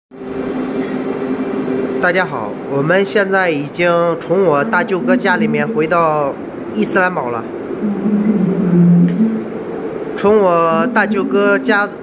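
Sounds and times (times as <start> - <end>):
steady mechanical hum: 0.2 - 12.0.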